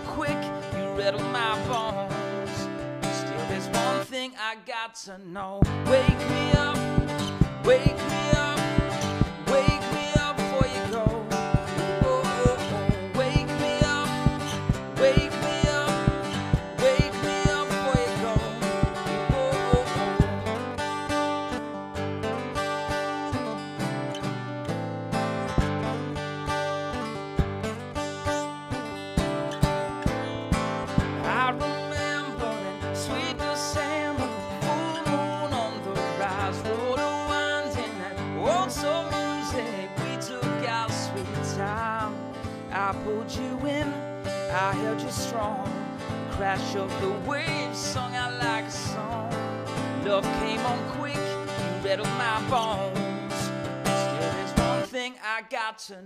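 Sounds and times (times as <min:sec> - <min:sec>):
acoustic guitar strumming: 0:00.0 - 0:04.3, 0:05.6 - 0:55.1.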